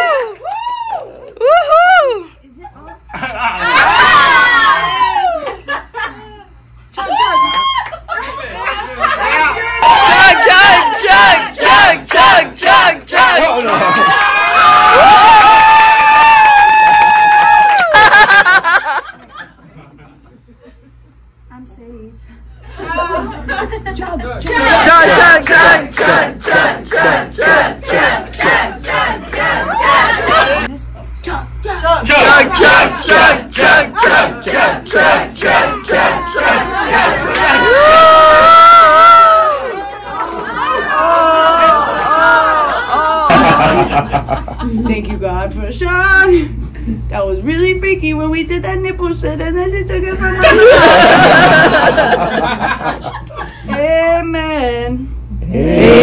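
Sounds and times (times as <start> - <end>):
several voices shouting rhythmically: 3.6 - 5.5, 9.8 - 16.4, 24.5 - 30.7, 32.0 - 43.4, 55.6 - 56.0
audience chanting: 9.8 - 13.8, 24.5 - 30.7, 32.0 - 37.9.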